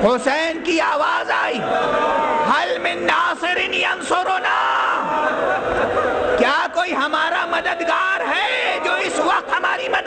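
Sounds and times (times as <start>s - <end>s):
crowd crying out in grief: 0.8s - 3.2s, 3.8s - 6.4s, 7.4s - 10.0s.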